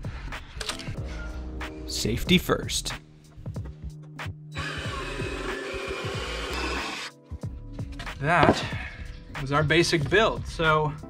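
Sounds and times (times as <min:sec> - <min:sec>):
jigsaw cutting wood: 0:04.6 - 0:07.1.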